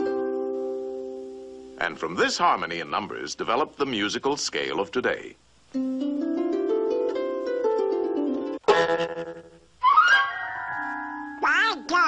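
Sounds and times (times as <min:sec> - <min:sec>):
cartoon music chord: 0:08.6 - 0:12.0
quacking cartoon duck voice: 0:11.4 - 0:12.0.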